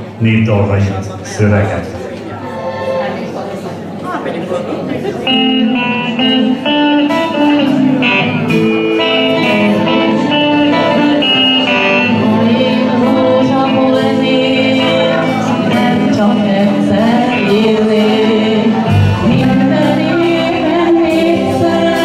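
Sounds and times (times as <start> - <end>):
keyboard melody: 1.5 - 3.6, 5.1 - 22.0
electric guitar: 4.9 - 22.0
bass guitar: 5.3 - 22.0.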